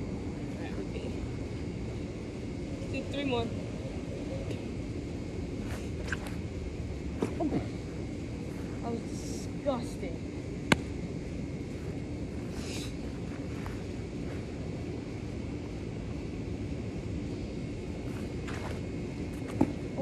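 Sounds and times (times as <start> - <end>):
faint low hum: 0.0 - 20.0.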